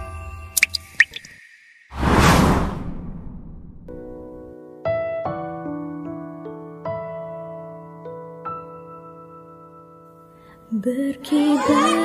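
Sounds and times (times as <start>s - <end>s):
rising drip plinks: 0.6s - 1.4s
loud whoosh: 1.9s - 4.4s.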